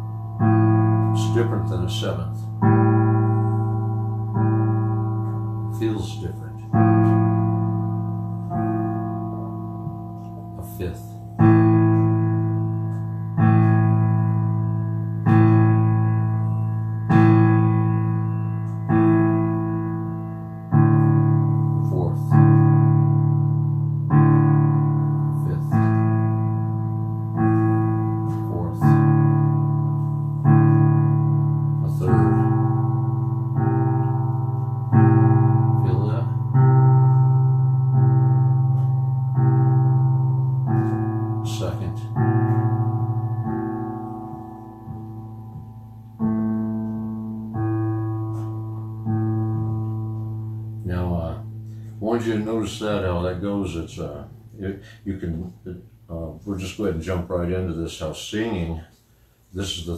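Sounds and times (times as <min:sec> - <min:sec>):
electric piano chords: 0:00.0 - 0:59.9.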